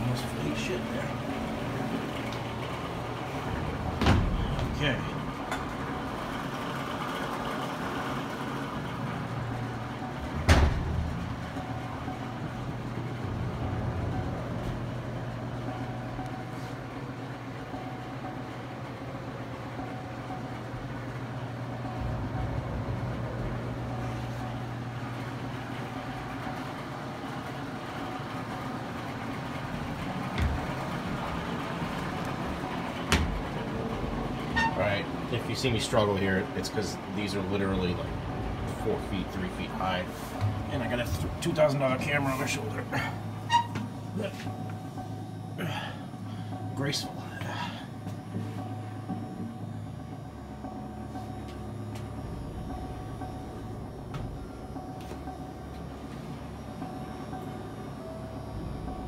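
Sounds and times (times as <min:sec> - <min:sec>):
room noise: 0:00.0 - 0:45.6
steady low hum: 0:00.0 - 0:59.0.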